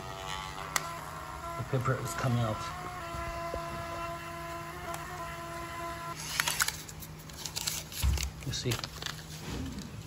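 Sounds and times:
printer motor whine: 0.0s - 6.7s
paper rustling and tearing: 6.2s - 10.0s.

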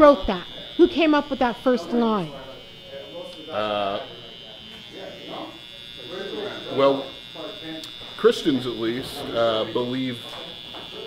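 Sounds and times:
hair trimmer buzzing: 0.0s - 11.0s.

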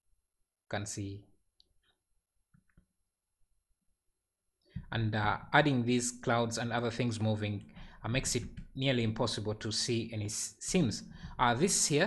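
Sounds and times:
person speaking: 4.8s - 12.0s.

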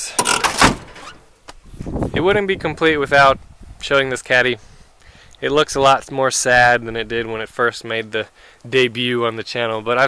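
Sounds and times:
car door shutting: 0.2s - 1.2s.

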